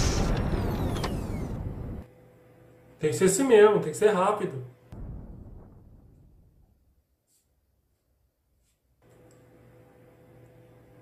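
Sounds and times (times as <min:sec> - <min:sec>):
sci-fi energy blast: 0:00.0 - 0:02.0.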